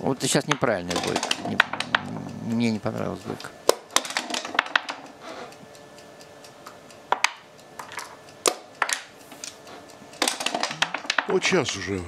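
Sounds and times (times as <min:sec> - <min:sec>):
checkers and dice clicking on board: 0:00.5 - 0:03.0, 0:03.7 - 0:05.1, 0:07.1 - 0:09.6, 0:10.2 - 0:11.8.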